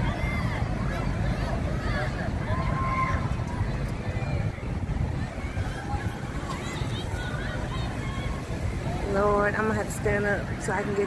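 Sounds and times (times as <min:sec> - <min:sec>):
faint distant voices: 0:00.0 - 0:11.0
low uneven outdoor rumble: 0:00.0 - 0:11.0.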